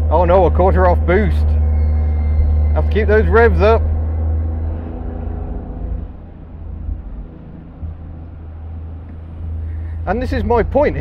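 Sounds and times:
low wind rumble: 0:00.0 - 0:11.0
small car engine pulling: 0:00.0 - 0:11.0.

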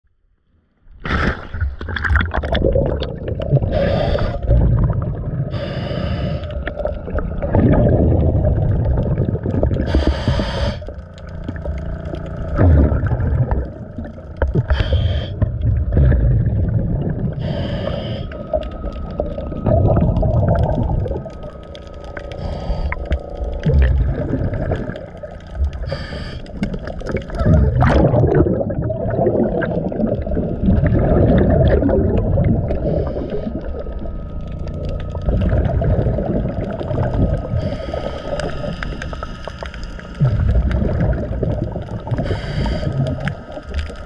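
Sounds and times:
exhaled bubbles rushing: 0:01.0 - 0:05.7, 0:06.5 - 0:44.0
regulator hissing inhale: 0:03.6 - 0:04.6, 0:05.5 - 0:07.0, 0:09.8 - 0:11.1, 0:14.6 - 0:15.4, 0:17.3 - 0:18.8, 0:22.2 - 0:23.7, 0:25.7 - 0:26.9, 0:32.7 - 0:33.8, 0:37.4 - 0:40.4, 0:42.1 - 0:44.0.

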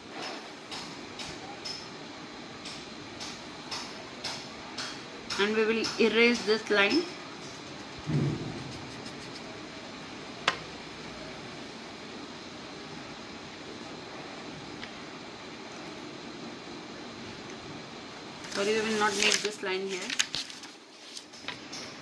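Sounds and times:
steady background noise: 0:00.0 - 0:22.0
low thump: 0:08.1 - 0:09.0.

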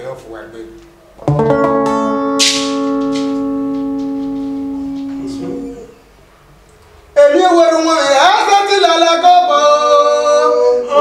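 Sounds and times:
electric guitar chord ringing: 0:01.2 - 0:06.1.

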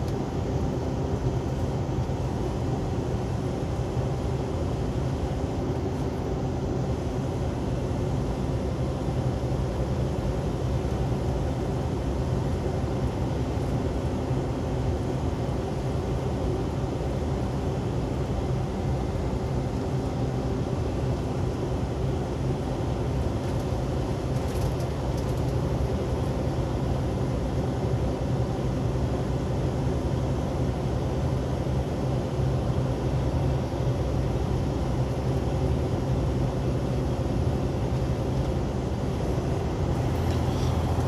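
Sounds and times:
diesel truck engine drone: 0:35.5 - 0:41.0.

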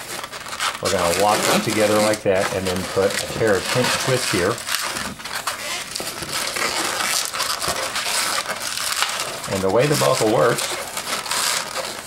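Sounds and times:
balloons rubbing and squeaking: 0:00.0 - 0:12.0.

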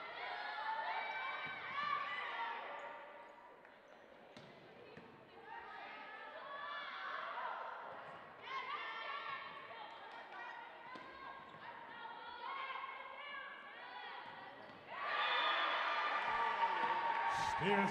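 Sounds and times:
crowd cheering and shouting: 0:14.9 - 0:17.9
players calling: 0:17.1 - 0:17.9.

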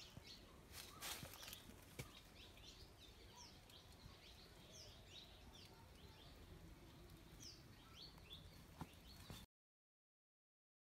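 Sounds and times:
faint bird chirping: 0:00.0 - 0:09.5.

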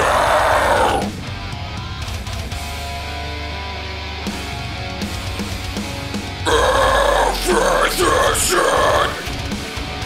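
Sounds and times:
harsh growled vocal: 0:00.0 - 0:01.2, 0:06.5 - 0:09.4
heavy metal backing track: 0:00.0 - 0:10.0.

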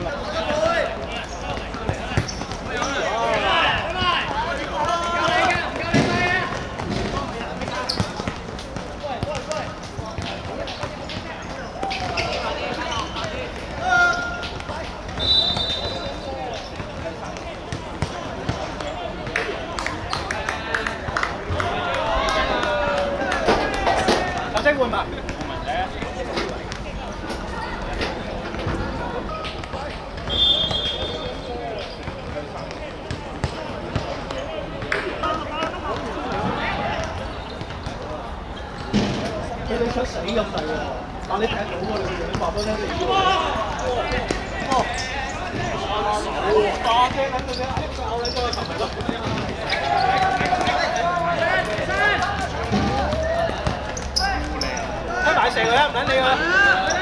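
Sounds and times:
players shouting: 0:00.0 - 0:57.0
football kicked and bouncing: 0:01.5 - 0:11.3, 0:16.6 - 0:19.3, 0:47.0 - 0:50.9, 0:51.7 - 0:54.6
short high whistle: 0:15.2 - 0:16.1, 0:30.3 - 0:31.2.

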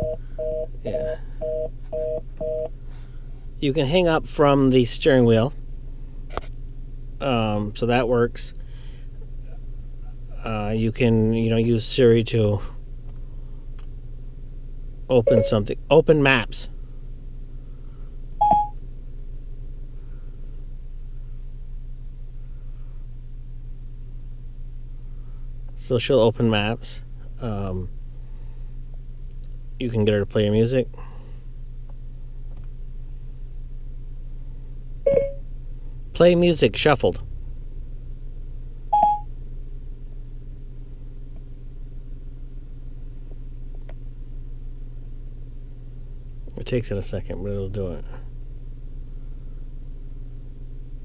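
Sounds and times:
short electronic beep: 0:00.0 - 0:00.7, 0:15.2 - 0:15.6, 0:18.4 - 0:18.8, 0:35.1 - 0:35.4, 0:39.0 - 0:39.3
steady low hum: 0:00.0 - 0:51.0.

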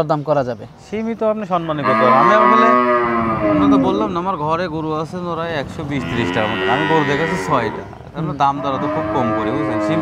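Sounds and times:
cattle mooing: 0:01.6 - 0:04.2, 0:05.9 - 0:10.0.

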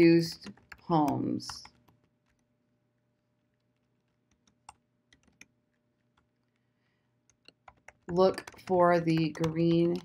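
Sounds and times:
typing on computer keyboard: 0:00.3 - 0:02.5, 0:03.6 - 0:06.6, 0:07.2 - 0:10.0.

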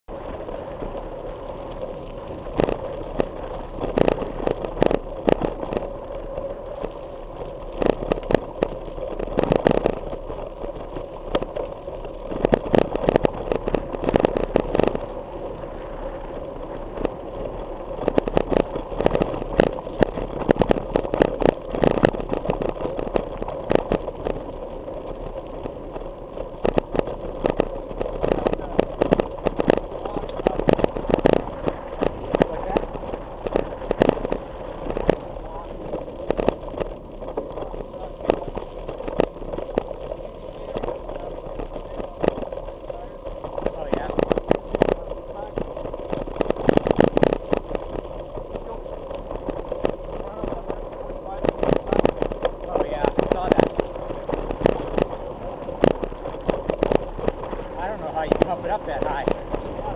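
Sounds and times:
trail and wind noise: 0:00.0 - 0:59.9.

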